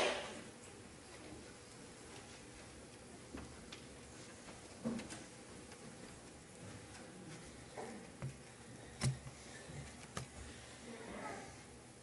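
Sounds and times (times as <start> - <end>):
faint clicks and knocks: 0.6 - 10.6.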